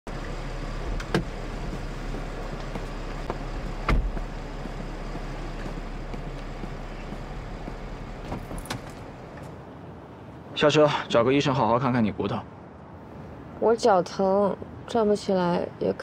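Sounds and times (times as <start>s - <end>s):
car engine idling: 0.1s - 10.0s
car door shutting: 0.9s - 1.8s, 2.5s - 4.3s, 8.2s - 9.6s.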